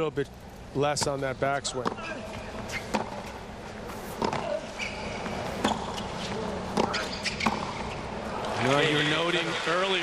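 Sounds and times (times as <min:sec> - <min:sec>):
tennis ball hit by rackets: 0:02.8 - 0:03.3, 0:04.1 - 0:04.6, 0:06.7 - 0:07.8.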